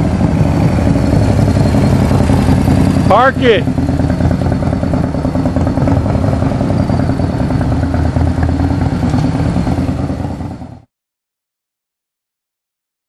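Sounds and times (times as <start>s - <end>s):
motorcycle engine running: 0.0s - 10.9s.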